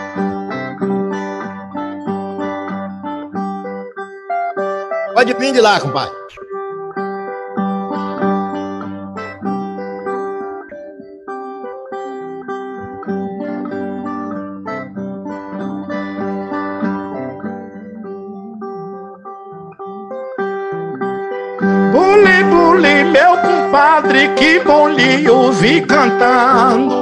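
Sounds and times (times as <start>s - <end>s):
plucked guitar-like strings melody: 0.0s - 27.0s.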